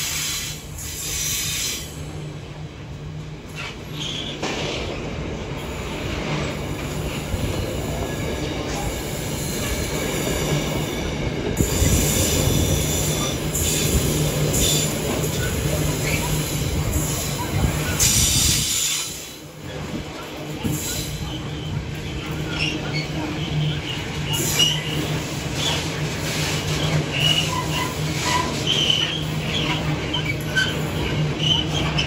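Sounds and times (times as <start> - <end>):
train wheels rumbling on rails: 0.0 - 32.0.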